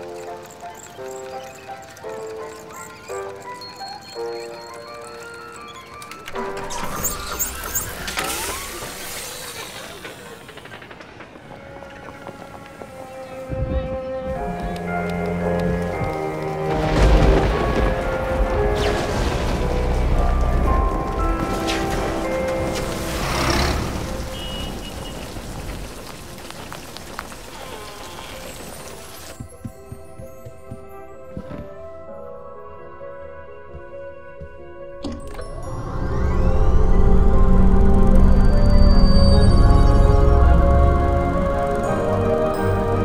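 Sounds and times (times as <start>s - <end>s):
soft background music: 0.0s - 9.3s, 11.4s - 43.0s
rumbling with squealing: 5.5s - 13.2s, 35.2s - 43.0s
rain falling on street: 14.8s - 29.4s
rising whine: 35.3s - 42.2s.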